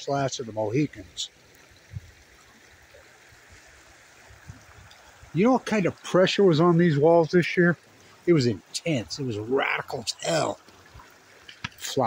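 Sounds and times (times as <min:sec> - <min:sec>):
faint river water rushing: 0:00.0 - 0:12.0.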